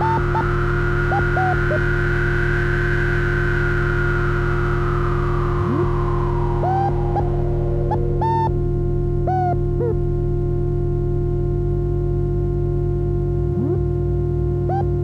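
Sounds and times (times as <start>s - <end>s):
high tone gliding downward: 0.0s - 8.6s, 13.5s - 14.0s
synthesizer low drone: 0.0s - 15.0s
short swooping synth blips: 13.5s - 14.0s.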